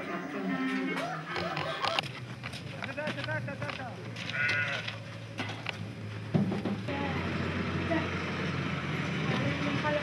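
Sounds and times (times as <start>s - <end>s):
people's voices: 0.0s - 4.9s.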